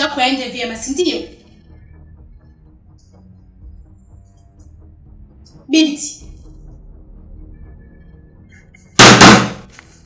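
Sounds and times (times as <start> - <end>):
loud sudden bang: 9.0 - 9.6.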